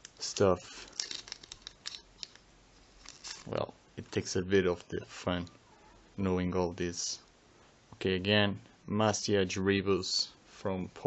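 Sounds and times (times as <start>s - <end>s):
plastic wrapper crinkling: 0.0s - 3.6s.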